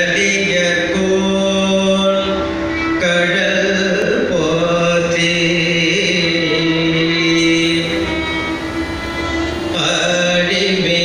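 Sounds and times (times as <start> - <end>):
electronic tanpura drone: 0.0 - 11.0.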